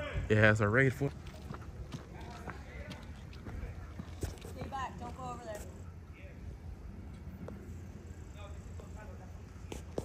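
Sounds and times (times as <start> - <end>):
distant voices talking: 0.0 - 10.0
street background: 0.0 - 10.0
footsteps: 0.1 - 5.9, 9.6 - 10.0.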